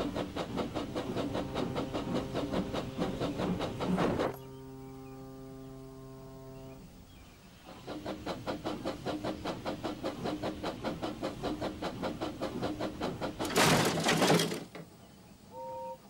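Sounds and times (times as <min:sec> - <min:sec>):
train running rhythmically: 0:00.0 - 0:14.7
low horn-like tone: 0:04.3 - 0:07.0, 0:15.5 - 0:16.0.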